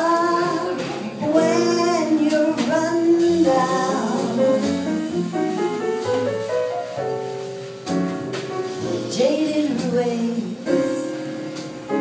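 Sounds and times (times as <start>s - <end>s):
woman singing a jazz ballad: 0.0s - 5.8s, 8.7s - 12.0s
piano bass and drums: 0.0s - 12.0s.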